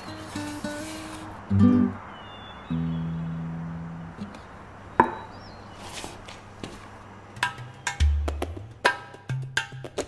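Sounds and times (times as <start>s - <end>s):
acoustic guitar note ringing: 0.0s - 2.0s.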